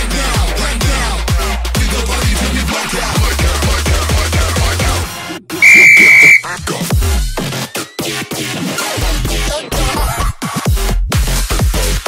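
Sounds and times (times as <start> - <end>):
electronic dance music: 5.6 - 6.4
high-pitched timer beep: 5.6 - 6.4.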